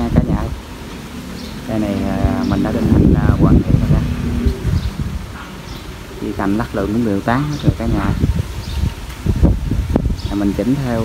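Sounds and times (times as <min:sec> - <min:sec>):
rumbling buffets on microphone: 0:01.6 - 0:06.7, 0:07.3 - 0:11.0.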